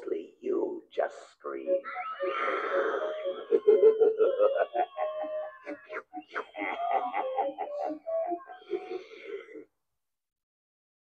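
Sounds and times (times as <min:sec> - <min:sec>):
choppy voice sounds: 0:00.0 - 0:09.7
breathy spooky voice: 0:01.3 - 0:09.7.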